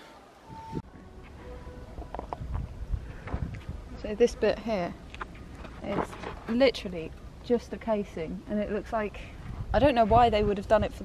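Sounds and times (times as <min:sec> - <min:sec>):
faint distant sounds: 0:00.0 - 0:10.2
wind buffeting microphone: 0:00.5 - 0:11.0.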